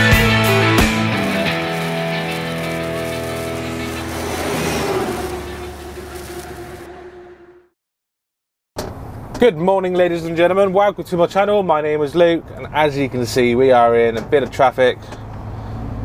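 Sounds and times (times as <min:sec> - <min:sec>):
guitar chords: 0:00.0 - 0:04.2.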